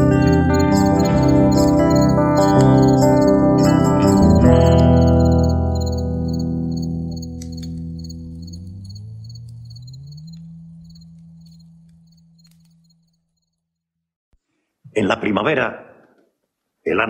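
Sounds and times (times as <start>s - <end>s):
faint high pulsing chirp: 0.0s - 13.6s.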